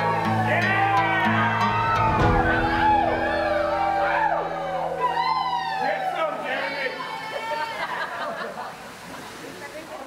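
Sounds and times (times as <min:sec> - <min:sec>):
crowd whooping and cheering: 0:00.0 - 0:08.4.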